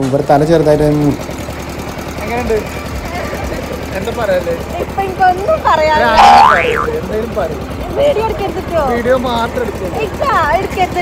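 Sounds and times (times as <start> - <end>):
high-pitched swooping squeal: 6.1 - 6.9.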